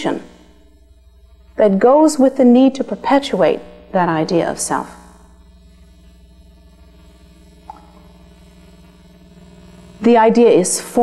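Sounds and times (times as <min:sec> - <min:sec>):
faint recording hiss: 0:00.0 - 0:11.0
low hum: 0:00.0 - 0:11.0.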